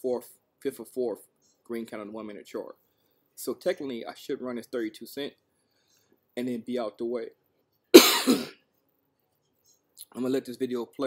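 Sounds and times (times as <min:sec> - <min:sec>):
man coughing: 0:08.0 - 0:08.6.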